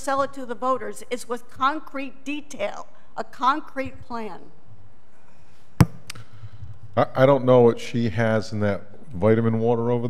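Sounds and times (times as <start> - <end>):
sharp knock: 5.8 - 6.1.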